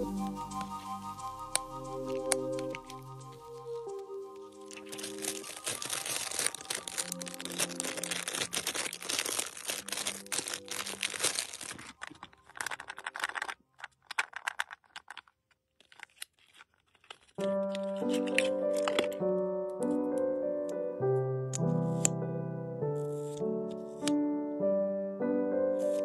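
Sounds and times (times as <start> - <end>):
soft music: 0.0 - 13.0, 17.4 - 26.0
plastic bags crinkling: 2.1 - 19.2.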